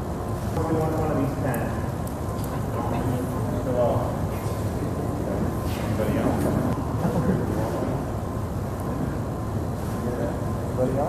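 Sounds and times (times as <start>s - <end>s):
crowded room rumble: 0.0s - 11.0s.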